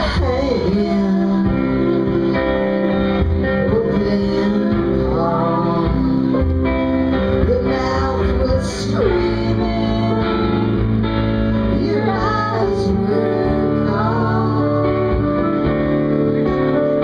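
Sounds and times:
woman singing: 0.0 - 10.9, 11.5 - 16.0
electric guitar: 0.0 - 17.0.

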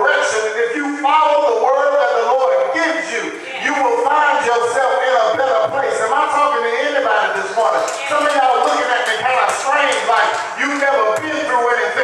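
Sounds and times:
man preaching into a microphone: 0.0 - 12.0.

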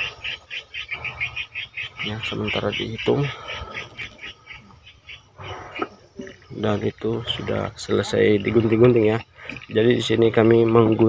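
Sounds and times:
animal chirping rapidly: 0.0 - 11.0.

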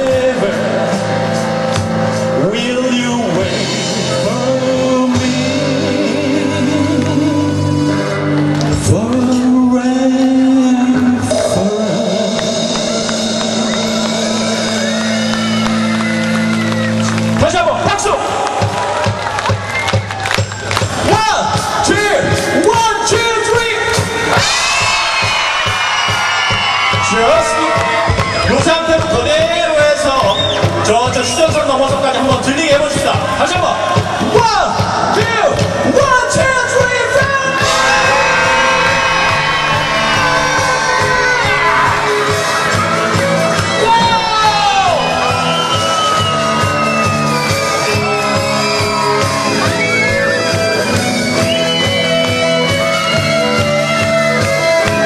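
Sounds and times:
electric guitar bending notes: 0.0 - 18.4, 37.3 - 55.0
live rock band playing: 0.0 - 55.0
drum kit steady beat: 11.3 - 15.9, 18.3 - 55.0.

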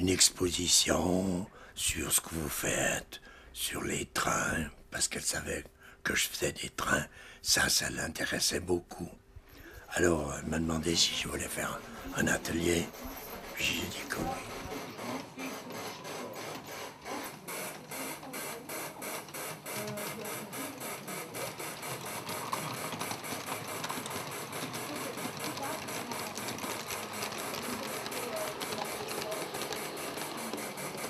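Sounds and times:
steady mechanical hiss: 10.7 - 31.0
train wheels clicking over rail joints: 12.5 - 31.0.

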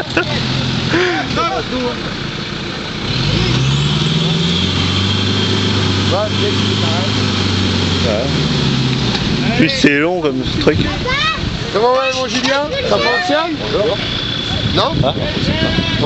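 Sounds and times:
car engine revving under load: 0.0 - 16.0.

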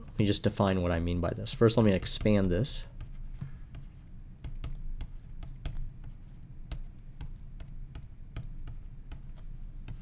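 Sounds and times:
low steady hum: 0.0 - 10.0
stylus clicking on a tablet: 3.8 - 10.0.

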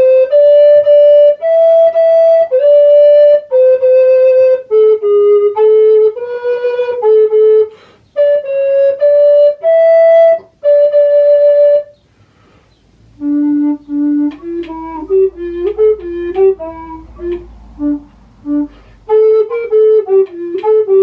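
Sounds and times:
recorder playing slow melody: 0.0 - 21.0.

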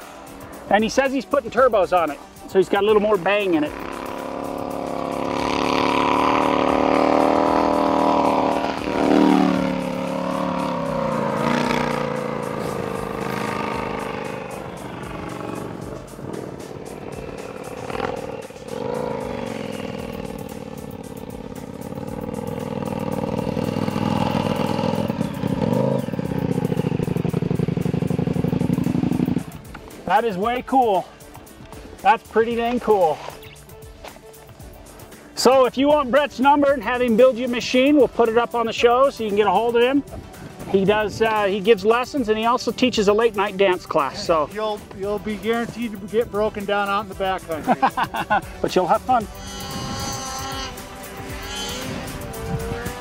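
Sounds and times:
background music: 0.0 - 53.0
snow bike engine revving: 2.6 - 30.5, 45.2 - 53.0.

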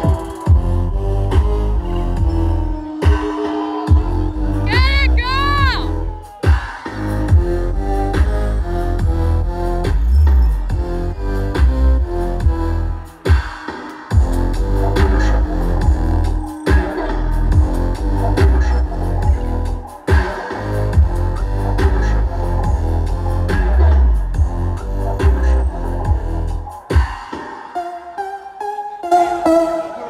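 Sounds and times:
dubstep music with heavy bass: 0.0 - 30.0.

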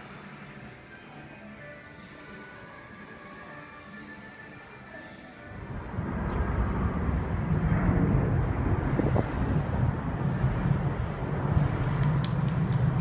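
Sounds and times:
airport ambience rumble: 0.0 - 13.0.

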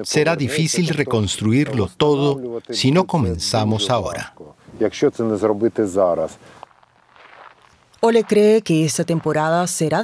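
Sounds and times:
man's voice: 0.0 - 6.4
footsteps through dry grass: 6.4 - 9.6.

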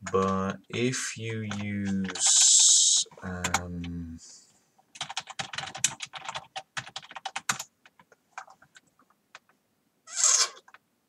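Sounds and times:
computer keyboard typing: 0.0 - 4.0, 4.9 - 9.6.

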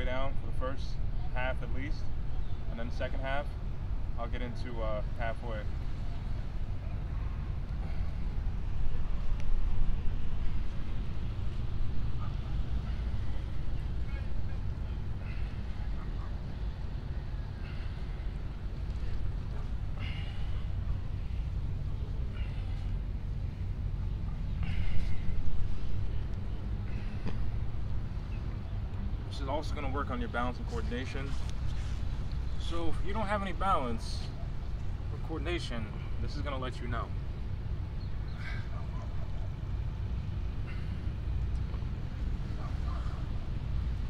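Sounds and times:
low outdoor rumble: 0.0 - 44.0.

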